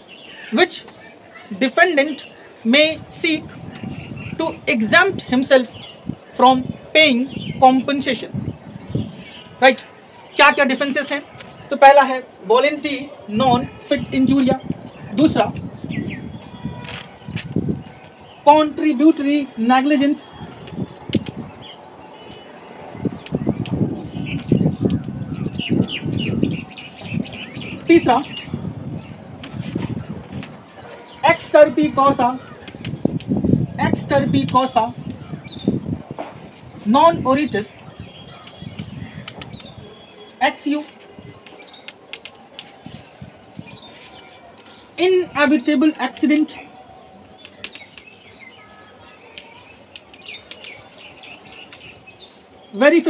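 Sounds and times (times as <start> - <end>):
small birds chirping: 0.0 - 53.0.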